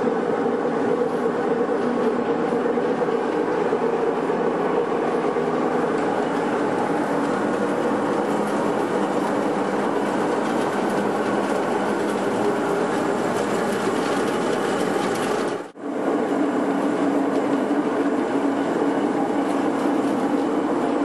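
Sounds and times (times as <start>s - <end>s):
grape crusher mechanical clatter: 0.5s - 15.7s.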